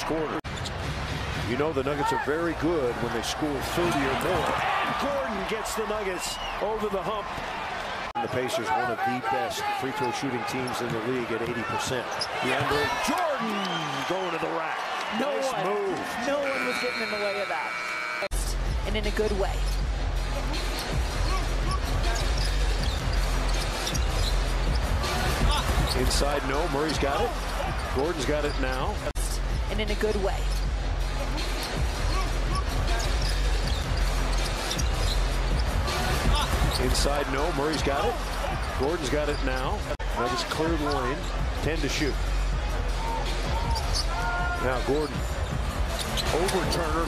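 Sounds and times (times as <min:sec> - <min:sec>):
arena crowd noise: 0:00.0 - 0:47.0.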